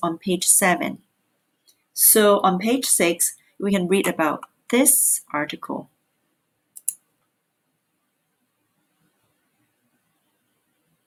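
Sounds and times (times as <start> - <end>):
computer mouse clicks: 6.7 - 7.1.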